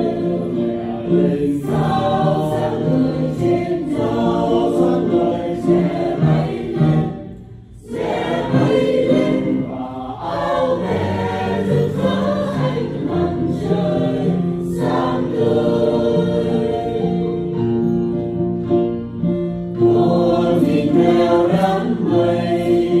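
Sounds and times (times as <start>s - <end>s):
mixed choir singing a hymn: 0.0s - 18.4s, 19.2s - 23.0s.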